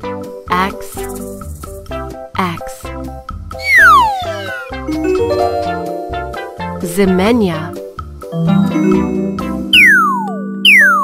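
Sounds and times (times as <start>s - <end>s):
falling whistle-like glide: 3.6s - 4.8s
background music notes: 3.6s - 10.7s.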